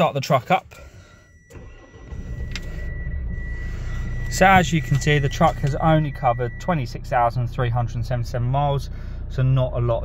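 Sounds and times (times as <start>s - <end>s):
diesel engine starting and idling: 0.1s - 10.0s.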